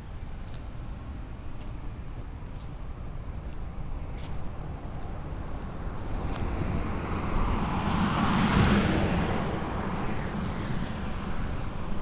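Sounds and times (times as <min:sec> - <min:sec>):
car passing: 0:04.6 - 0:12.0.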